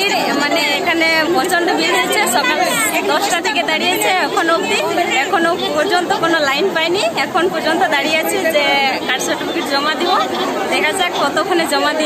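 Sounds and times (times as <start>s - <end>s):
crowd chatter: 0.0s - 12.0s
woman speaking: 0.0s - 12.0s.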